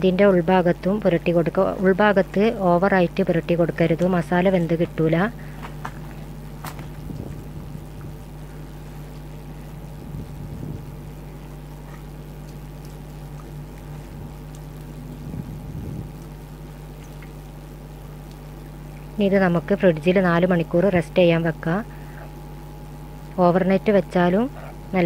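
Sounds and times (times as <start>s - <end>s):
steady low hum: 0.0s - 25.0s.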